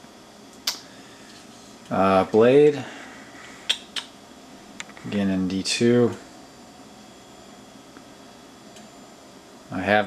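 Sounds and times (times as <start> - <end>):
faint room hiss: 0.1 - 10.0.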